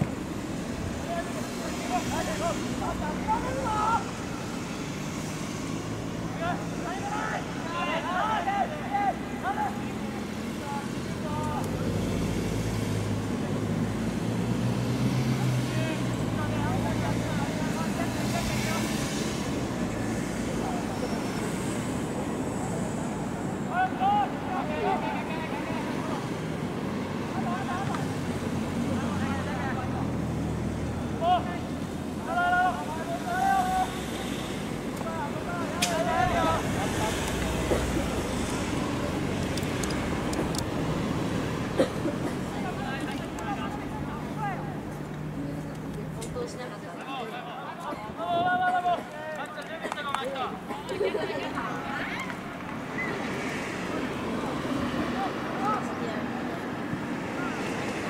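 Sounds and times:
players shouting and calling: 0.0 - 12.4, 15.2 - 58.0.

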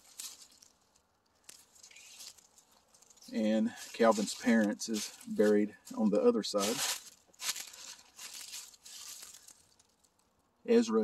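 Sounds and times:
footsteps crunching dry leaves: 0.0 - 10.4.

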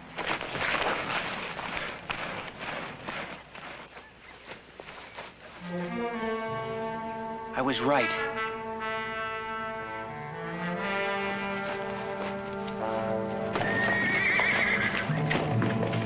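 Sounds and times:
hooves clattering: 0.0 - 7.4, 10.3 - 16.0
orchestral music with brass: 5.6 - 16.0
horse whinnying: 13.5 - 15.4.

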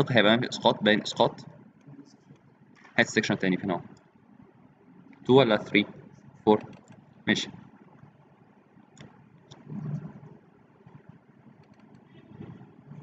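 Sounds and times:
computer mouse clicks: 6.5 - 7.1, 8.9 - 10.1, 10.9 - 12.6
low murmur: 9.6 - 13.0.

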